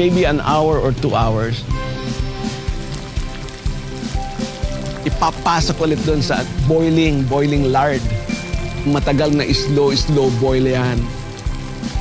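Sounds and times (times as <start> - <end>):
background music with held tones: 0.0 - 12.0
meat deep-frying in hot fat: 0.0 - 12.0.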